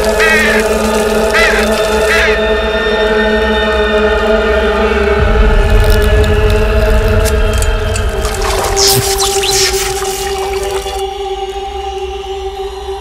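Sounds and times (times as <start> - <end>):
crow cawing: 0.0 - 2.4
chant-like horror score drone: 0.0 - 13.0
deep low rumble: 5.0 - 10.0.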